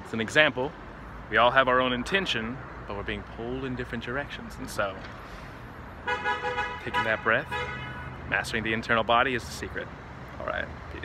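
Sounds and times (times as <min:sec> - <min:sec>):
street traffic hiss: 0:00.0 - 0:11.0
car horn: 0:06.0 - 0:08.2.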